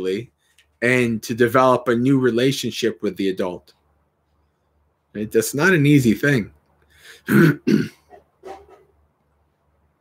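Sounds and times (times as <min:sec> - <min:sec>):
man clearing his throat: 0:07.2 - 0:08.1.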